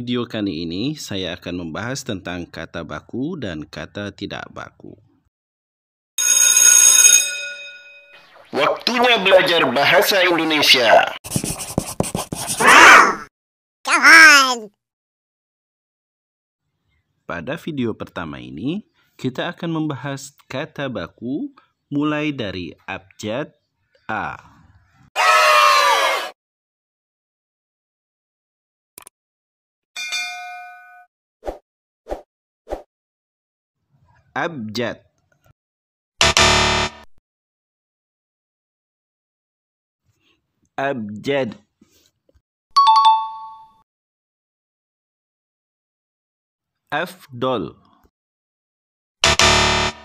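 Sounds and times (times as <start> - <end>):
electric school bell ringing: 6.2 - 8.2, 30.0 - 31.0
bright notification ding: 42.8 - 43.7.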